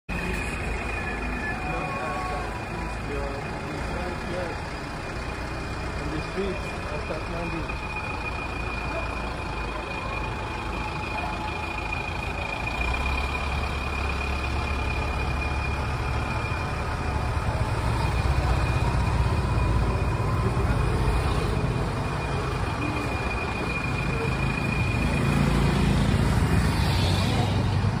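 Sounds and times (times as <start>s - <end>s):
steady high tone: 0.1s - 27.9s
vehicle engines running: 0.1s - 28.0s.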